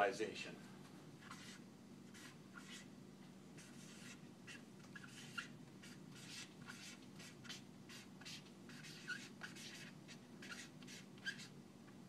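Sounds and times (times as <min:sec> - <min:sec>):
low room hum: 0:00.0 - 0:12.0
marker squeak: 0:01.2 - 0:01.6, 0:02.2 - 0:02.9, 0:03.6 - 0:11.5
marker writing on flip chart: 0:01.2 - 0:02.9, 0:03.6 - 0:11.5.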